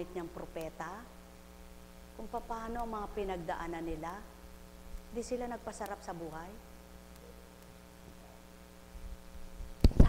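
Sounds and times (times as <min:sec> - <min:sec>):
faint electrical mains hum: 0:00.0 - 0:10.0
light hiss: 0:00.0 - 0:10.0.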